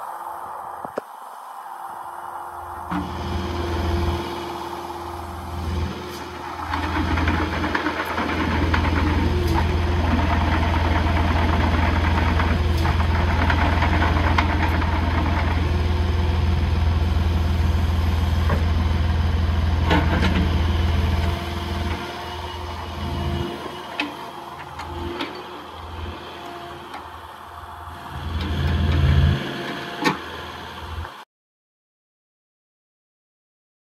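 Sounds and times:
excavator diesel engine running: 1.5s - 31.2s.

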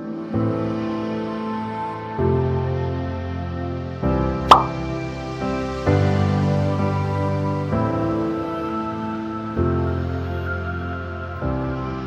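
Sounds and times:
slow instrumental music: 0.0s - 12.0s
water-drop-like plop: 4.5s - 4.8s.

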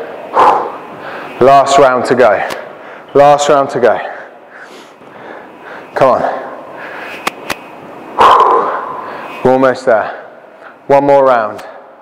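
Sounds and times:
man breathing hard: 0.0s - 1.4s, 2.7s - 3.1s, 4.1s - 6.0s, 6.7s - 7.3s, 8.2s - 9.4s.

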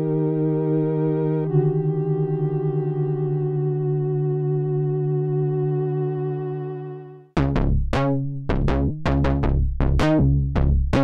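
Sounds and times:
synthesizer holding a chord: 0.0s - 7.3s.

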